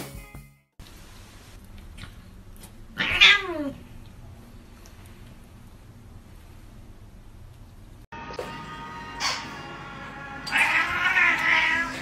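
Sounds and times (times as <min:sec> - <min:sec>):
cat yowling: 0:03.0 - 0:03.8, 0:10.5 - 0:12.0.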